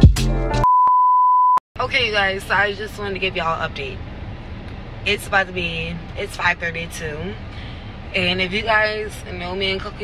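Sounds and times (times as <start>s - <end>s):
music with a beat: 0.0s - 0.7s
high electronic censor bleep: 0.6s - 1.6s
woman speaking: 1.8s - 4.0s, 5.1s - 7.5s, 8.1s - 10.0s.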